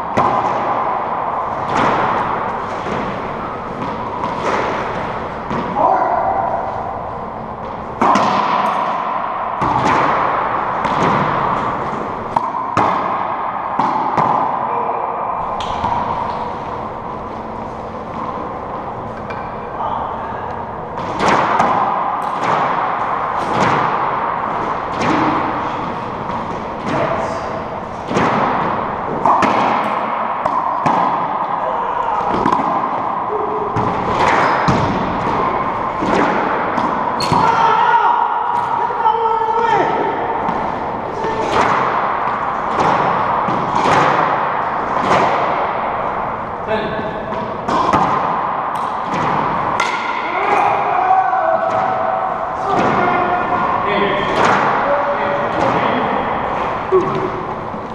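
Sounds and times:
racquetball hits echoing: 0:00.0 - 0:57.9.

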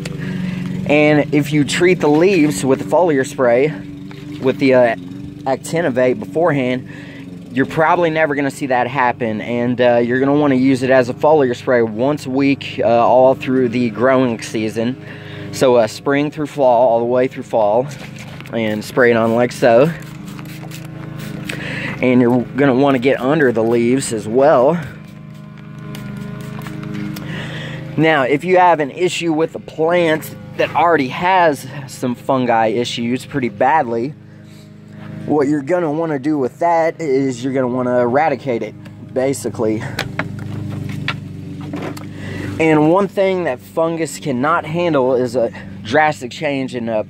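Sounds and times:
machinery humming: 0:09.1 - 0:44.3
spray bottle spritzing: 0:17.9 - 0:24.2, 0:24.8 - 0:27.9.

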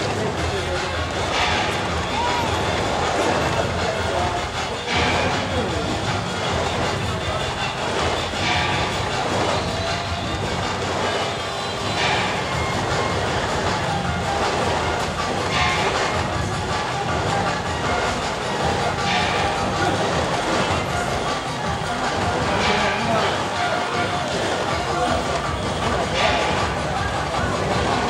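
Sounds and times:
crowd voices: 0:00.0 - 0:28.0
rattling clatter: 0:00.0 - 0:28.0
loud crash: 0:00.1 - 0:28.0.

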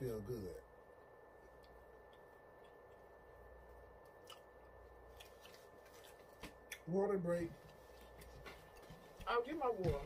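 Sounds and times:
faint high whine: 0:00.0 - 0:08.3.

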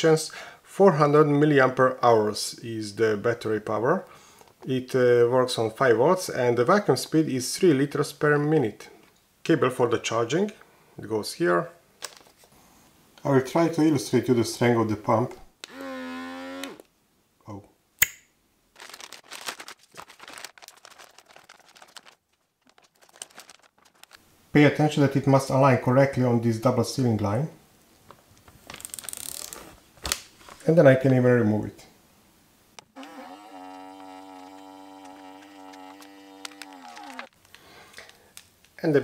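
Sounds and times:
electric vacuum pump motor hum: 0:15.7 - 0:16.8, 0:32.9 - 0:37.3
sharp click: 0:18.0 - 0:18.3
plastic bag crinkling: 0:18.7 - 0:24.2, 0:28.1 - 0:30.7, 0:33.9 - 0:38.5.

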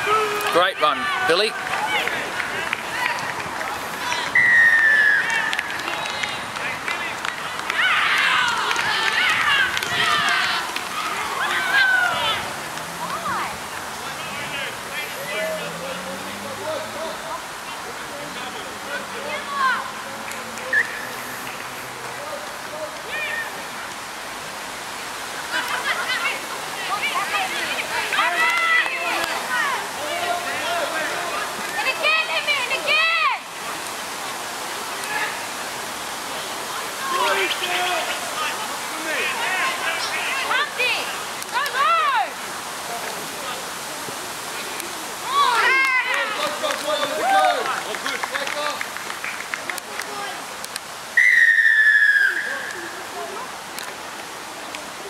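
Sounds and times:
people shouting and calling: 0:00.0 - 0:21.3, 0:22.2 - 0:24.0, 0:25.4 - 0:33.7, 0:36.6 - 0:42.5, 0:45.0 - 0:48.0
steady background hiss: 0:00.0 - 0:55.0.

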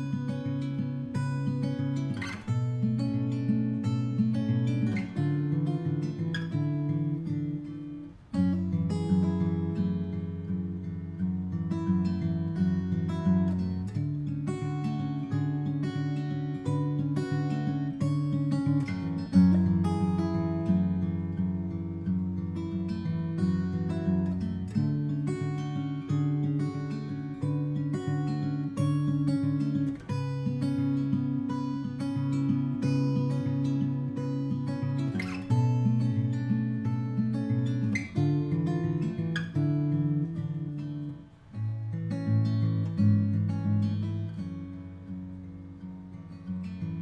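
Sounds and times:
acoustic guitar music: 0:00.0 - 0:47.0.

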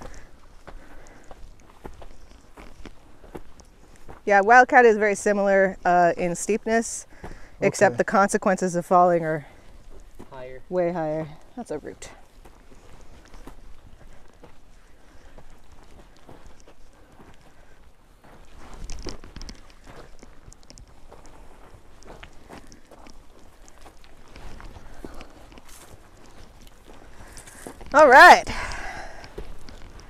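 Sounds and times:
footsteps on gravelly dirt: 0:00.0 - 0:30.0.

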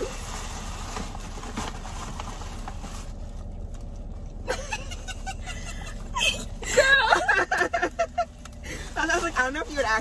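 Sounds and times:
woman laughing: 0:04.4 - 0:08.4.

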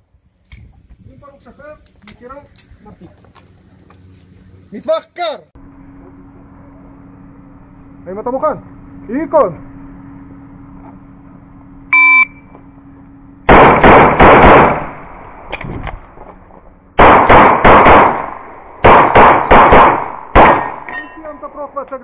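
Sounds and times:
shot timer beep: 0:11.9 - 0:12.5
pistol shots: 0:13.5 - 0:15.2, 0:17.0 - 0:21.1.

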